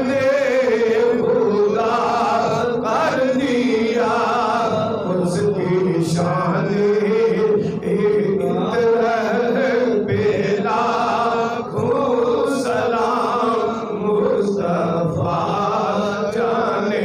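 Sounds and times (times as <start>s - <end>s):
man chanting into a microphone: 0.0s - 17.0s.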